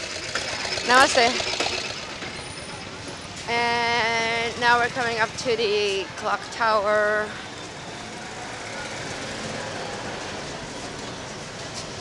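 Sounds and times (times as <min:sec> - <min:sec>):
street traffic and scooters: 0:00.0 - 0:12.0
voices of people in street: 0:00.7 - 0:12.0.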